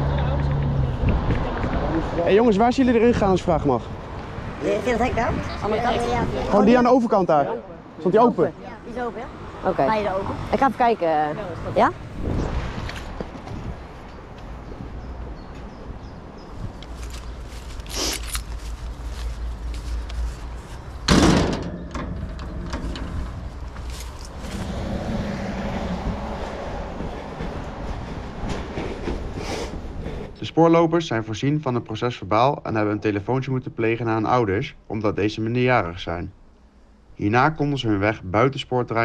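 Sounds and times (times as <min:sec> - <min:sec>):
footsteps: 0:16.5 - 0:21.1, 0:22.5 - 0:30.4
gate knock: 0:21.1 - 0:23.3
metal gate clanging: 0:21.1 - 0:23.4.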